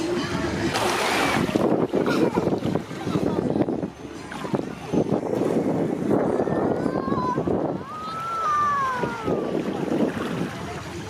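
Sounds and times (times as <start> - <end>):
small waves washing: 0.0 - 11.0
wind buffeting microphone: 0.0 - 11.0.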